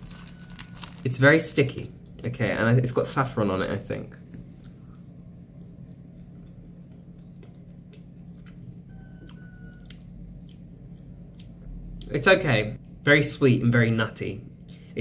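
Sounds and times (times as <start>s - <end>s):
low room hum: 0.0s - 15.0s
person chewing: 5.6s - 12.1s.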